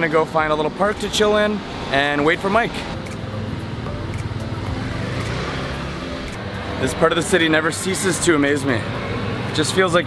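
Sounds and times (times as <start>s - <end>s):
motor scooter passing by: 3.6s - 9.8s.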